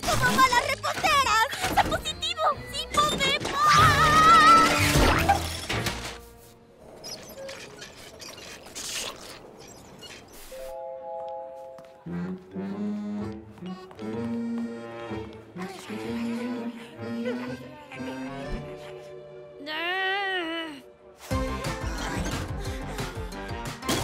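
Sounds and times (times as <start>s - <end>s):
light music: 10.6s - 24.0s.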